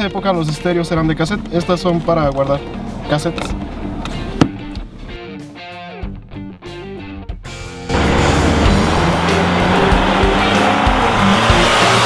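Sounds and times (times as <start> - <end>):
car driving past: 7.9 - 12.0.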